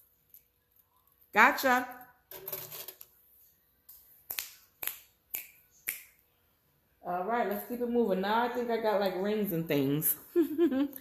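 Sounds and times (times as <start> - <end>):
finger snapping: 4.3 - 6.2.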